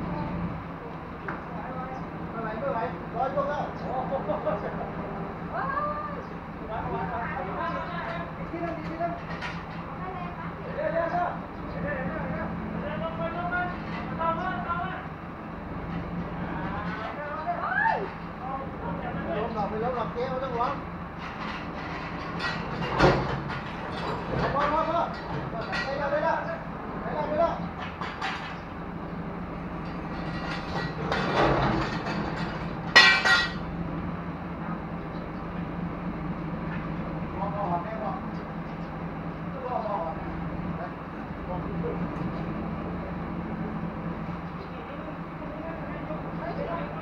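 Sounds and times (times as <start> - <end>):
crane engine humming: 0.0 - 47.0
men talking and calling out: 0.1 - 47.0
loud metallic clang: 29.8 - 33.7.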